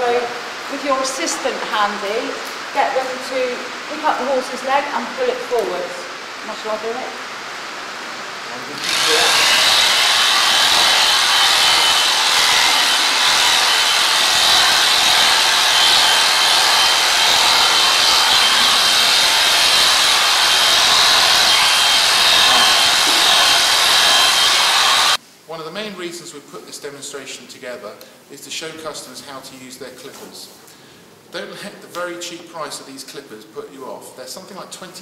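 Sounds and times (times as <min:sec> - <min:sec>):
electric clippers buzzing: 0:08.8 - 0:25.2.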